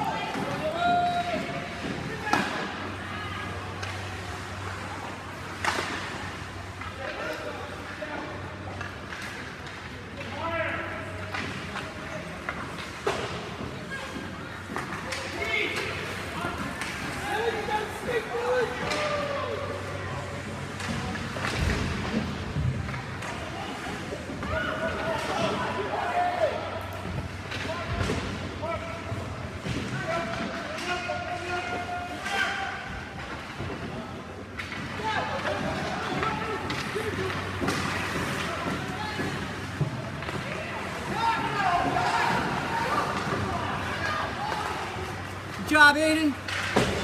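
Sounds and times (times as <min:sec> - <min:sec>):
hockey sticks and puck clacking: 0:00.0 - 0:47.0
spectator chatter: 0:00.0 - 0:47.0.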